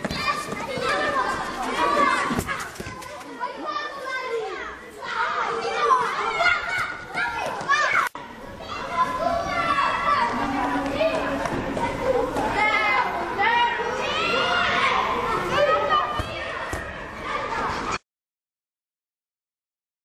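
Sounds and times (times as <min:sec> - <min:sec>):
children chattering and calling out: 0:00.0 - 0:18.0.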